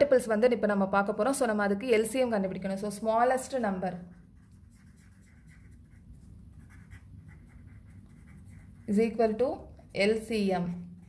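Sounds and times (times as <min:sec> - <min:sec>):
pen scratching on paper: 0:03.8 - 0:10.2.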